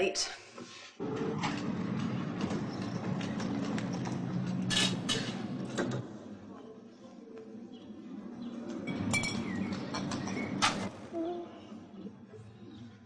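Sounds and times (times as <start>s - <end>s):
electric vehicle hum: 1.0s - 6.5s.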